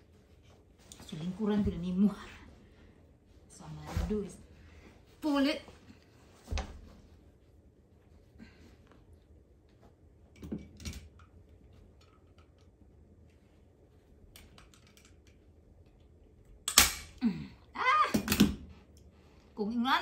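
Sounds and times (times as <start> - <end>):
staple gun snap: 16.7 - 17.1.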